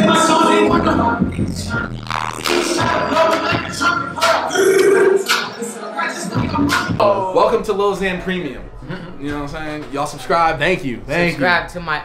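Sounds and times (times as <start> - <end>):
person vocalizing wordlessly: 4.5 - 5.4.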